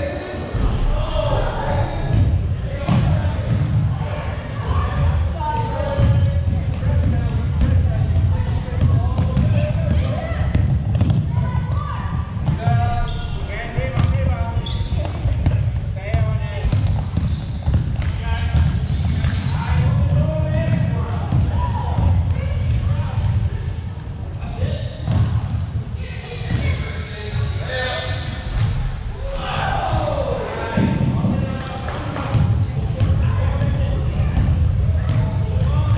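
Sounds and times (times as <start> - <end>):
voices shouting in large hall: 0.0 - 6.3, 25.9 - 31.6.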